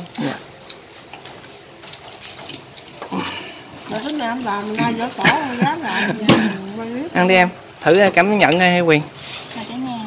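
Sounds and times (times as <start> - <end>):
people eating crispy food: 0.0 - 10.0.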